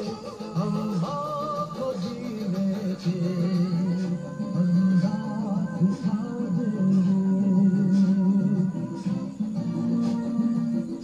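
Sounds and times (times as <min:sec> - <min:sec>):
song with long held vocal note: 0:00.0 - 0:11.0.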